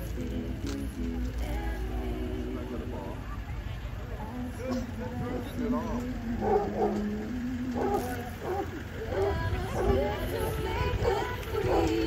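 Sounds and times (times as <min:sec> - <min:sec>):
people's voices: 0:00.0 - 0:12.0
truck engine running at low speed: 0:00.0 - 0:12.0.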